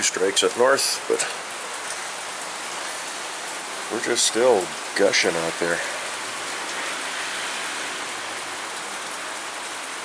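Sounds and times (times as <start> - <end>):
heavy rain: 0.0 - 10.0.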